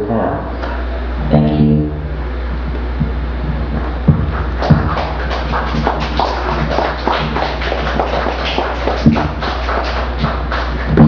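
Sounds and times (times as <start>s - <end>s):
low electronic hum: 0.0s - 11.0s
loud thump: 4.1s - 5.0s.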